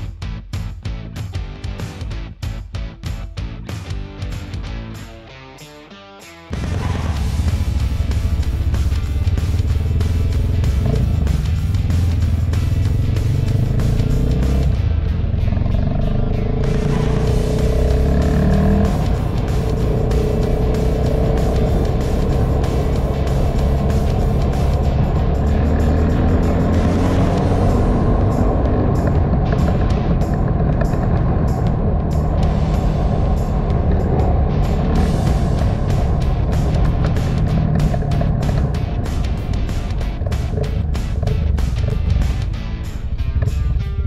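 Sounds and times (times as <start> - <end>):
music playing: 0.0 - 44.0
motorcycle engine running: 6.5 - 44.0
wind and road noise: 6.6 - 44.0.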